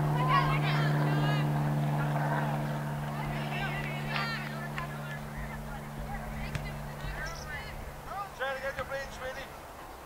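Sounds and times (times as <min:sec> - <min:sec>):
distant shouting voices: 0:00.0 - 0:09.9
steady low hum: 0:00.0 - 0:10.0.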